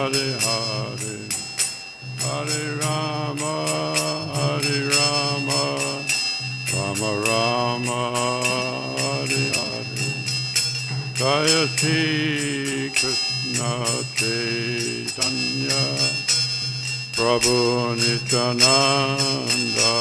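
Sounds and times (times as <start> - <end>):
man singing a chant: 0.0 - 1.6, 2.2 - 10.4, 11.2 - 16.4, 17.2 - 20.0
hand cymbals ringing: 0.0 - 20.0.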